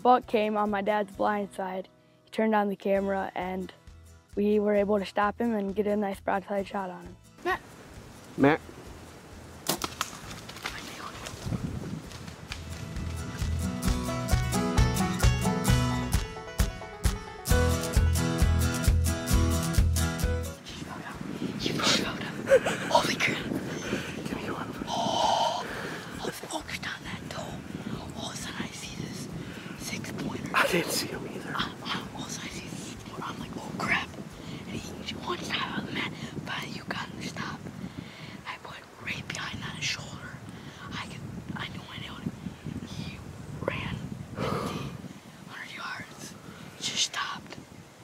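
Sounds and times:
boy whispering: 20.6 - 29.2, 29.8 - 37.6, 45.5 - 47.5
boy whispering excitedly: 29.8 - 34.1.

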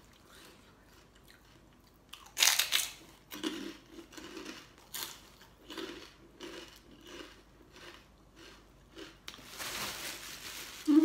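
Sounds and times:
crunching of pork crackling: 0.3 - 9.6.

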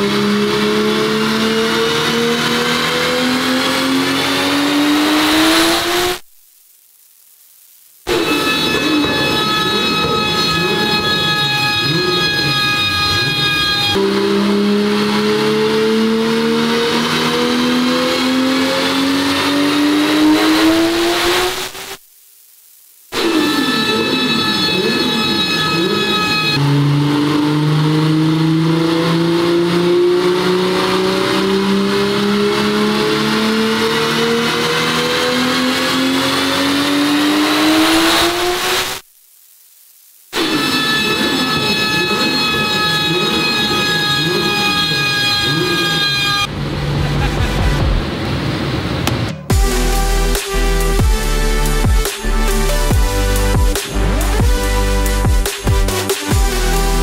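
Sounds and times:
turbocharged engine at full throttle: 0.0 - 6.3, 11.8 - 22.0, 23.2 - 39.1, 41.1 - 57.0.

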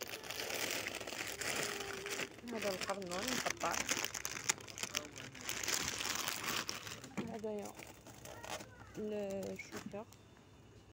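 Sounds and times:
plastic bags crinkling: 0.0 - 10.0.

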